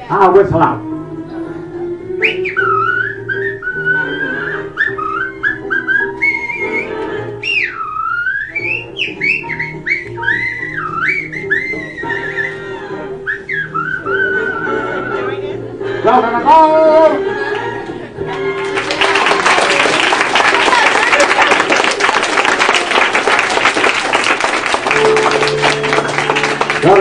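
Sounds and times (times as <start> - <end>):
backing music: 0.0 - 27.0
man whistling a tune: 2.2 - 12.6, 13.2 - 15.2.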